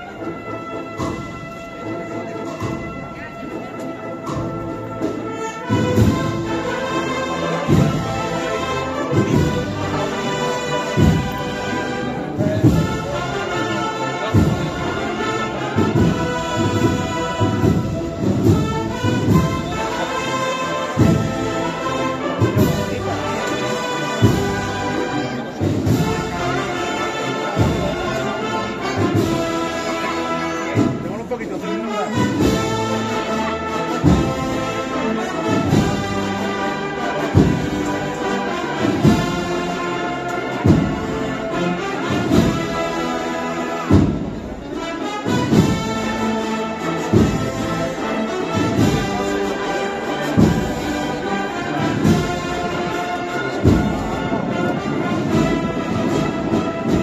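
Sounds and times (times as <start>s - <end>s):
brass band chords: 0.0s - 57.0s.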